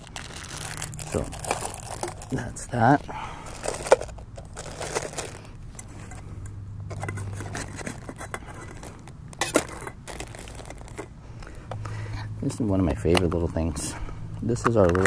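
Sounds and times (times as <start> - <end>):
plastic crinkling: 0.0 - 5.6, 7.0 - 11.6.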